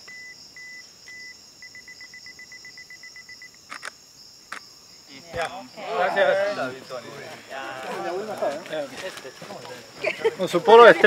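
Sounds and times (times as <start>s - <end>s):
insect chorus drone: 0.0s - 11.0s
sharp clicks: 3.5s - 4.7s.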